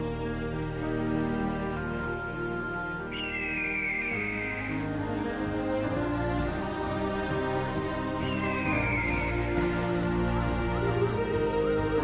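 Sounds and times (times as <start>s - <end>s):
slow background music: 0.0s - 12.0s
high whistle-like tone sliding down: 3.1s - 4.8s.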